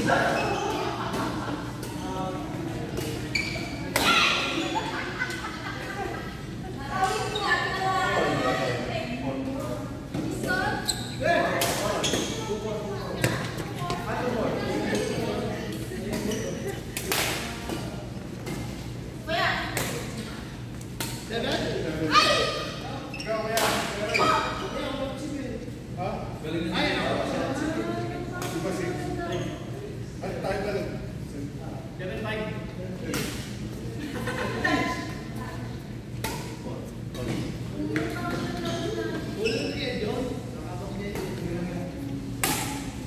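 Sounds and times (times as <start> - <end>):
players talking and calling: 0.0 - 43.0
rackets hitting shuttlecock: 42.4 - 43.0.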